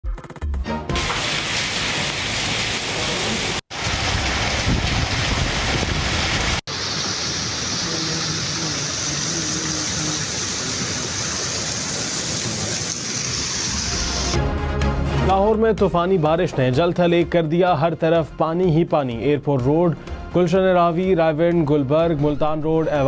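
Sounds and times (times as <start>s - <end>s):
heavy rain pouring: 1.0s - 14.4s
wind on microphone: 4.5s - 6.6s.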